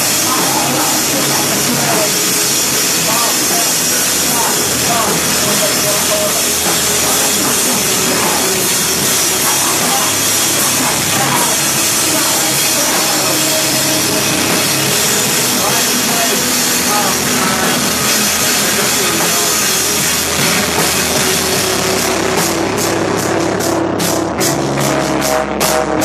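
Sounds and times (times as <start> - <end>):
cymbal strokes: 0.0 - 25.9
screamo band playing: 0.0 - 26.0.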